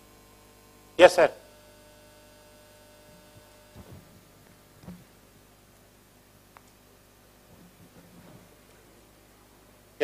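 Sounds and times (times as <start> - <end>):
faint electrical hum: 0.0 - 10.0
soft low thumps: 3.2 - 4.2.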